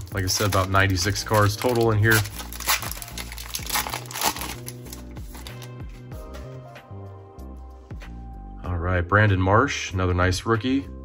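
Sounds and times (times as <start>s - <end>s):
foil wrapper crinkling: 0.0s - 5.8s
background music with bass beat: 4.7s - 8.7s.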